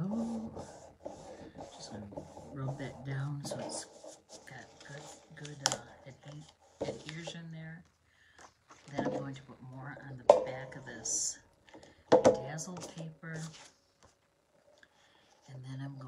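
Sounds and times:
person talking: 0.0 - 0.8, 1.6 - 7.9, 8.9 - 11.5, 12.2 - 13.7, 15.5 - 16.0.

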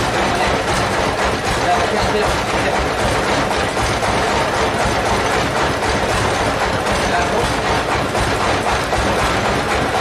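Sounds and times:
sawmill machinery idling: 0.0 - 10.0.

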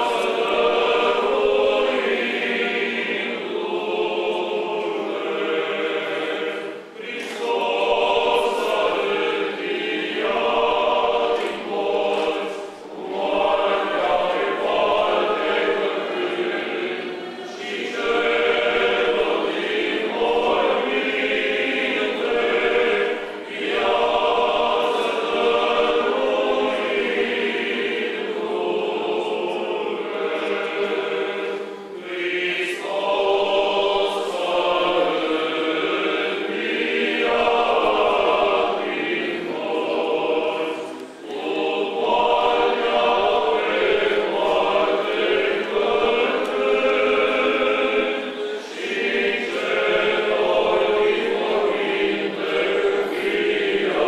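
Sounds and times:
choir chanting unaccompanied: 0.0 - 54.0.

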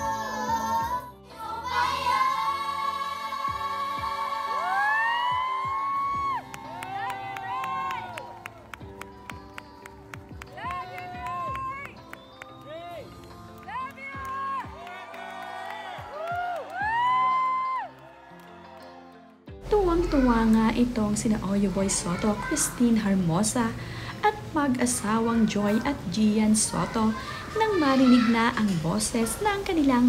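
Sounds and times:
girls' choir holding high note: 0.0 - 8.1
backing music with low beats: 3.0 - 17.9.

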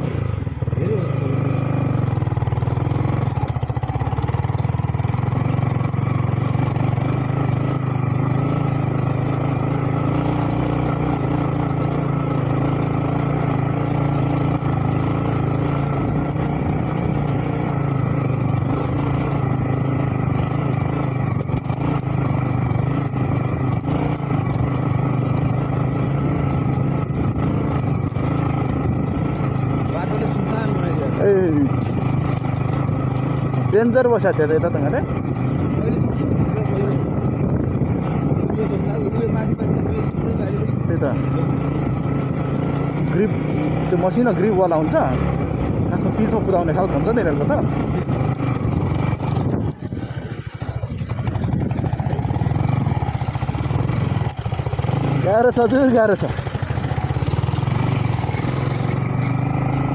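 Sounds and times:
motorcycle engine at low revs: 0.0 - 59.9.

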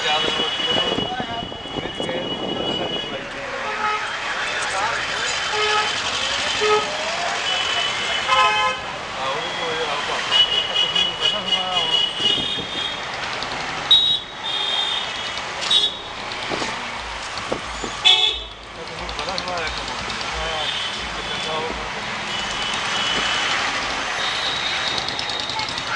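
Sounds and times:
vehicle horns honking: 0.0 - 4.3, 5.4 - 13.0, 13.9 - 16.1, 18.0 - 18.6, 20.5 - 25.6
street traffic: 0.0 - 25.9
voices of passers-by: 0.0 - 25.9
motorbikes passing: 3.2 - 8.3, 11.4 - 25.9
sharp clicks: 13.0 - 13.8, 15.2 - 17.7, 18.8 - 21.0, 24.6 - 25.9.

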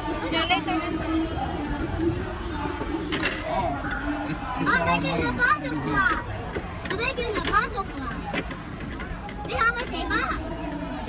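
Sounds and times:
busy hall background noise: 0.0 - 11.0
children's voices: 3.6 - 8.4, 9.4 - 10.7.

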